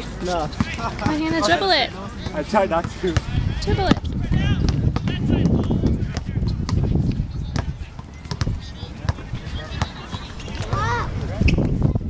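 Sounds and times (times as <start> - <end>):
voices of children and adults: 0.6 - 12.0
soccer ball kick thuds: 2.2 - 6.9.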